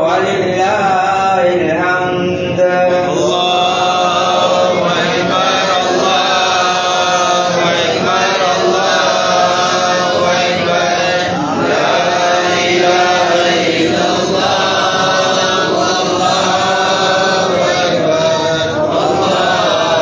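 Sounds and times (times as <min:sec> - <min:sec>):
voices chanting: 0:00.0 - 0:20.0.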